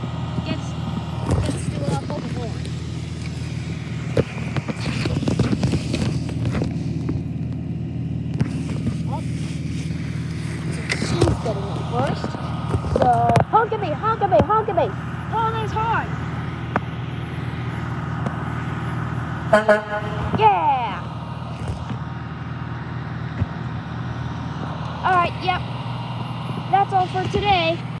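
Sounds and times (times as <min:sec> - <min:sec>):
diesel engine idling: 0:00.0 - 0:28.0.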